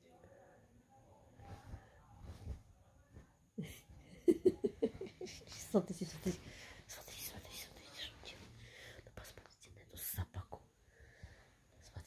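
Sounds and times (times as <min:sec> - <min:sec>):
person whispering: 0:05.2 - 0:10.7, 0:11.8 - 0:12.0.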